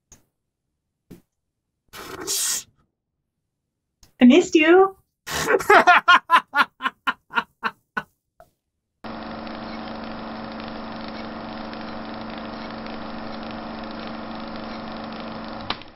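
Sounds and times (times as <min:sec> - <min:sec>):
person laughing: 0:05.3 - 0:08.1.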